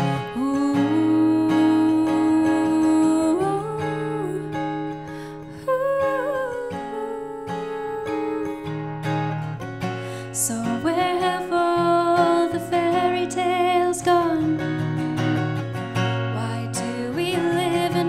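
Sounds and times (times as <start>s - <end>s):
strummed acoustic guitar: 0.0s - 18.0s
woman singing long notes: 0.3s - 4.6s, 5.6s - 8.7s.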